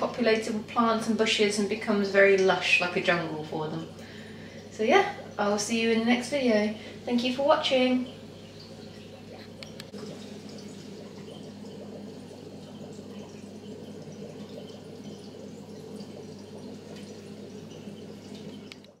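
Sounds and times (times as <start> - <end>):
aquarium filter hum: 0.0 - 19.0
water trickling and splashing: 0.0 - 19.0
faint clicks: 9.3 - 10.0, 18.4 - 19.0.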